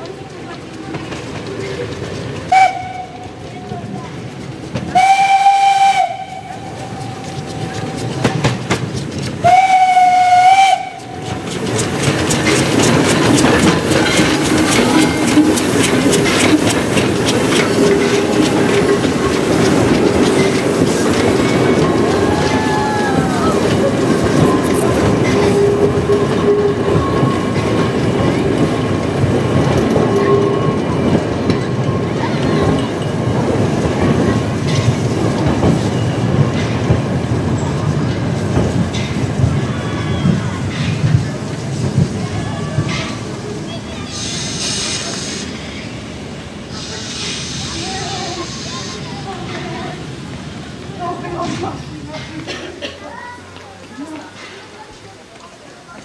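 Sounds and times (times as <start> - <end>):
wheels clicking over rail joints: 0.0 - 44.2
train rolling past: 0.0 - 56.0
steam locomotive whistle: 2.5 - 3.4, 4.9 - 7.2, 9.4 - 11.2
wheels squealing: 6.4 - 36.8, 39.0 - 41.6.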